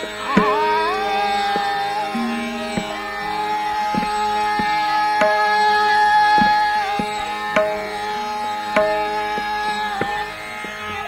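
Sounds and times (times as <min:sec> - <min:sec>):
tabla strokes: 0:00.0 - 0:11.0
tanpura drone: 0:00.0 - 0:11.0
held melodic note: 0:00.3 - 0:04.2.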